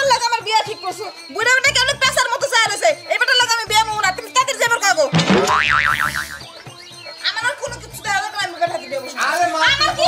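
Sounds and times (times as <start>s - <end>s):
cartoon pitch swoop: 5.2s - 6.5s
warbling whistle tone: 5.2s - 7.0s.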